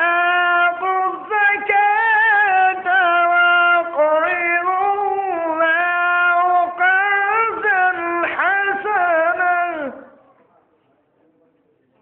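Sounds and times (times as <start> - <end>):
man reciting melodically: 0.0 - 10.3.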